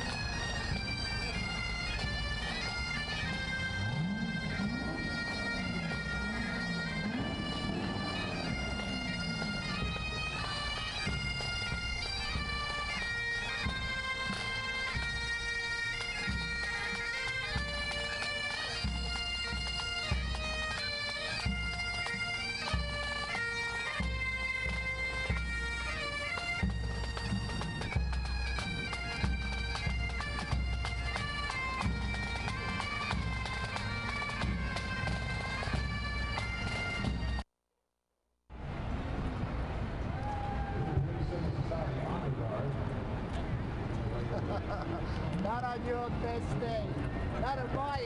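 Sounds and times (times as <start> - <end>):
bagpipes playing a march: 0.0 - 37.4, 45.3 - 48.0.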